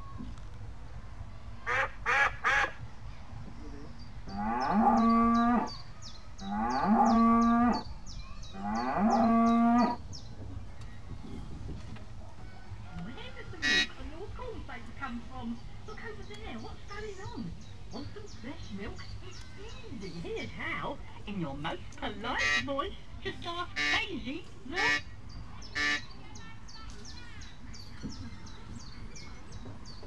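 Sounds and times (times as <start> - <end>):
short calls: 24.8 - 26.2.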